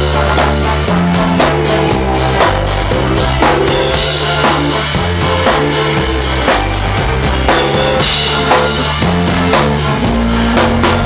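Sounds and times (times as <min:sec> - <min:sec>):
bass and guitar: 0:00.0 - 0:11.0
drum kit playing: 0:00.0 - 0:11.0.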